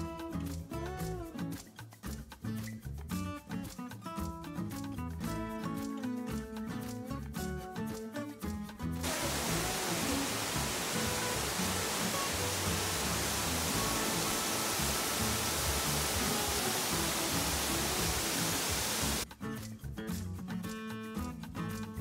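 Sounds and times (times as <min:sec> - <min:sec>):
faint background music: 0:00.0 - 0:22.0
waterfall rushing: 0:09.0 - 0:19.2.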